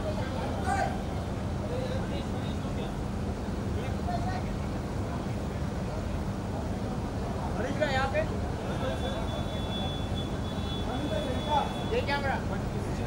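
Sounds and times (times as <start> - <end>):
faint crowd voices: 0.0 - 13.0
low hum of crowded space: 0.0 - 13.0.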